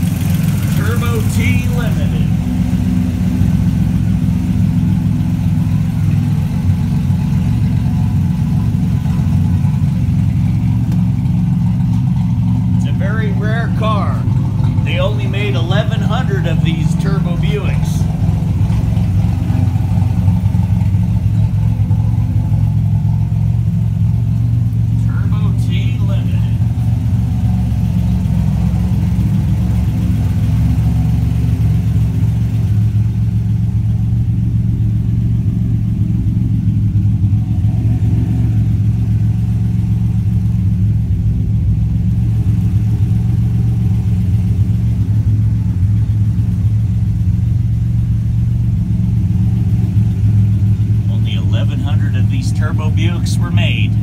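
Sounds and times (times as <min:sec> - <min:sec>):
car engine idling: 0:00.0 - 0:54.0.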